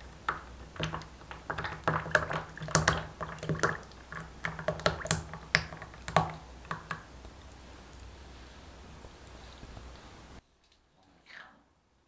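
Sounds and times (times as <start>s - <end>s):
thick mixture pouring with wet pops: 0.0s - 10.4s.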